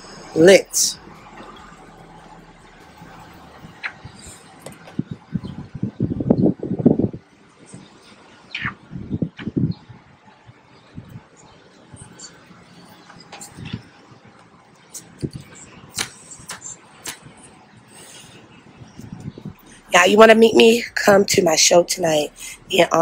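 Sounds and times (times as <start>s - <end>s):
faint outdoor background: 0.0s - 23.0s
wind buffeting microphone: 0.9s - 23.0s.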